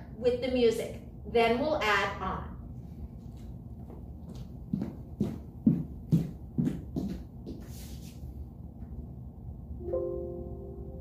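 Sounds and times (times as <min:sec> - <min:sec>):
footsteps on hard floor: 0:03.3 - 0:08.1.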